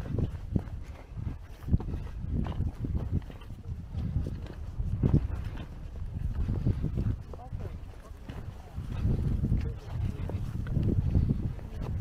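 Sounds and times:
footsteps crunching on stones: 0:00.0 - 0:12.0
wind buffeting microphone: 0:00.0 - 0:12.0.

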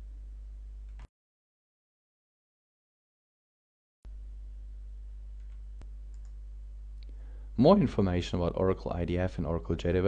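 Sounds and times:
low electrical hum: 0:00.0 - 0:01.1, 0:04.1 - 0:10.0.

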